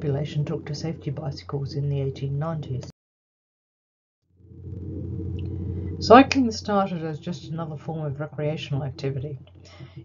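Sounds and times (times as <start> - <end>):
low hum of recording noise: 0.0 - 2.9, 4.4 - 10.0.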